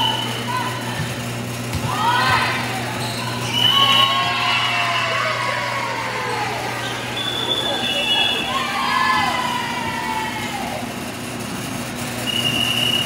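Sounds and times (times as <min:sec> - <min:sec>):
steady low hum: 0:00.0 - 0:13.0
sneakers squeaking on court: 0:00.2 - 0:04.4.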